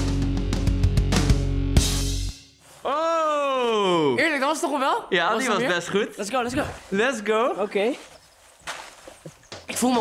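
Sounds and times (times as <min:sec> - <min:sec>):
man talking: 0:02.8 - 0:04.2, 0:05.1 - 0:08.0.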